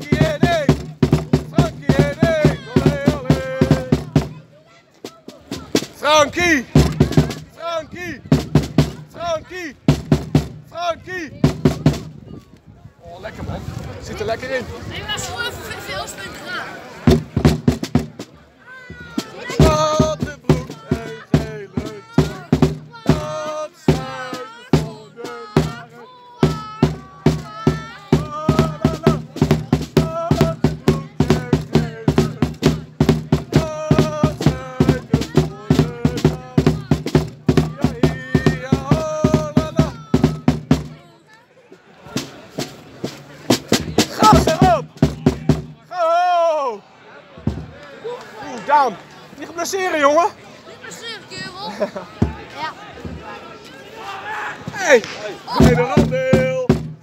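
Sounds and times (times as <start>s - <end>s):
voices singing along: 0.0s - 4.4s, 5.5s - 9.7s, 18.7s - 41.1s, 43.5s - 46.4s, 52.2s - 57.0s
drum beaten fast: 0.0s - 12.2s, 17.0s - 41.0s, 42.1s - 46.1s, 47.4s - 47.8s, 52.2s - 53.3s, 54.7s - 57.0s.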